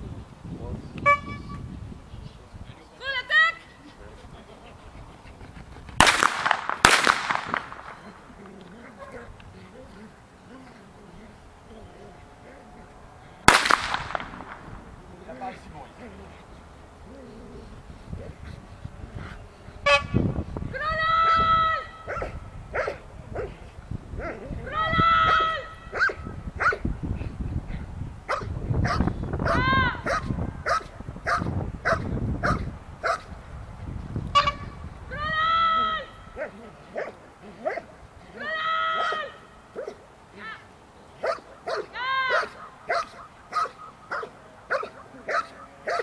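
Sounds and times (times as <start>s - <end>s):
sharp cracks: 6.0s - 8.7s, 13.4s - 14.8s
dog barking: 22.1s - 23.5s, 25.9s - 26.8s, 28.3s - 33.2s, 36.4s - 37.8s, 41.2s - 46.0s.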